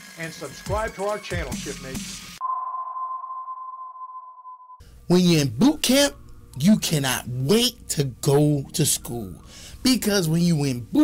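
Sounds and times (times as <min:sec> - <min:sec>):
sonar ping tone: 0:02.4 - 0:04.8.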